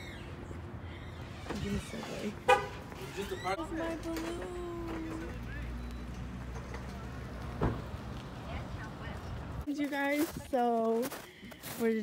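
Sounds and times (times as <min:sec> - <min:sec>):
car horn beep: 0:02.4 - 0:02.9.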